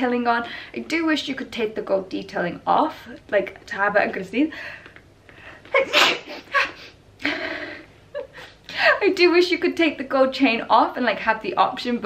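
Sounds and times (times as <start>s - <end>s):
woman sneezing: 5.7s - 6.9s.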